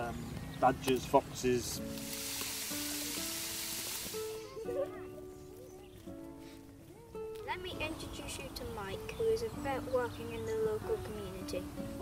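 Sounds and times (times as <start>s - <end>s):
soft music with held notes: 0.0s - 12.0s
water jet spraying into reeds: 1.8s - 4.6s.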